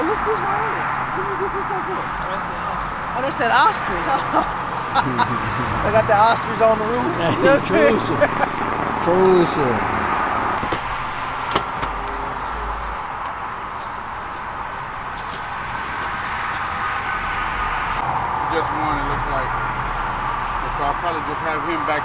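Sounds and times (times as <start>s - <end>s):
outdoor background noise: 0.0s - 22.0s.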